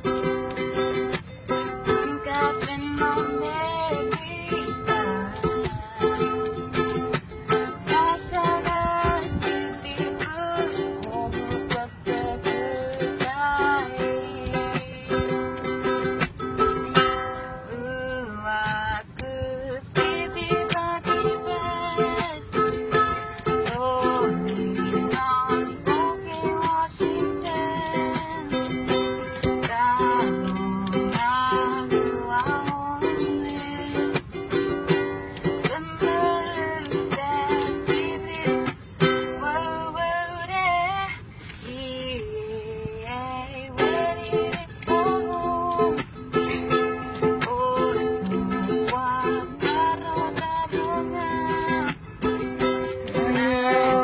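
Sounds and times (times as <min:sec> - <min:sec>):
ukulele strumming: 0:00.0 - 0:54.0
person singing: 0:01.8 - 0:16.2, 0:17.7 - 0:54.0.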